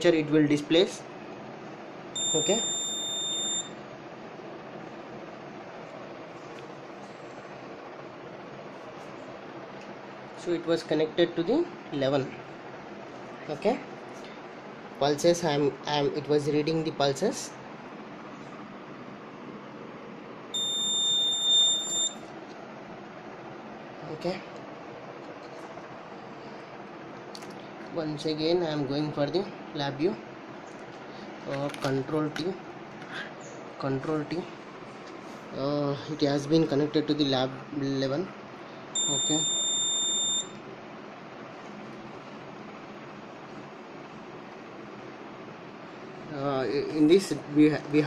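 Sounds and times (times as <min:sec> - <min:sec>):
high-pitched electronic buzzer beep: 0:02.2 - 0:03.8, 0:20.6 - 0:22.2, 0:39.0 - 0:40.6.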